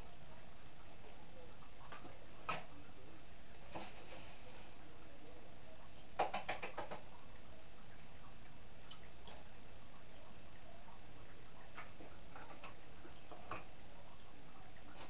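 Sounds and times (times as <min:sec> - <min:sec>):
background hiss: 0:00.0 - 0:15.0.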